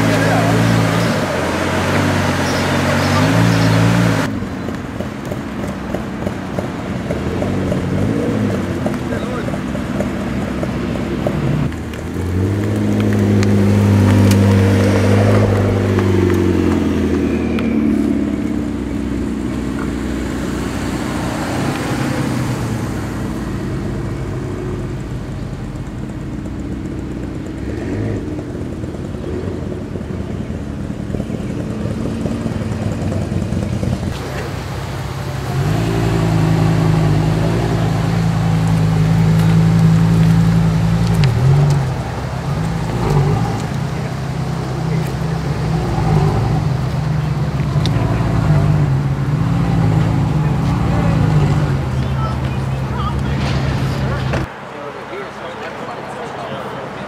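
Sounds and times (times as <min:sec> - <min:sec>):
road noise: 0:00.0 - 0:57.0
sports car engines passing: 0:00.0 - 0:57.0.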